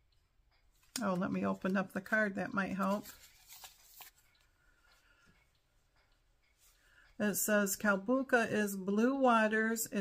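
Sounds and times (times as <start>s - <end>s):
paper card rustling: 2.7s - 4.4s.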